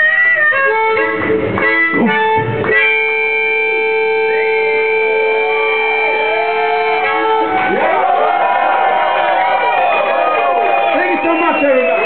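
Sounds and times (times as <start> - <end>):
amplified blues harmonica chord: 0.0 - 7.8.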